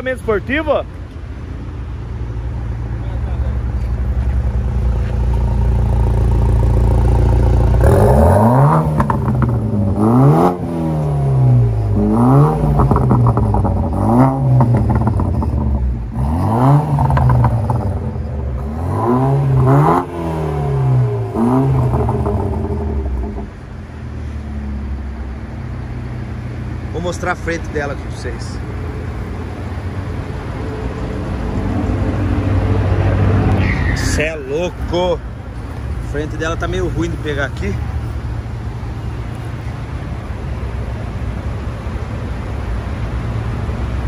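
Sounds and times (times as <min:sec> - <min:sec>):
car engine idling and revving: 0:00.0 - 0:44.0.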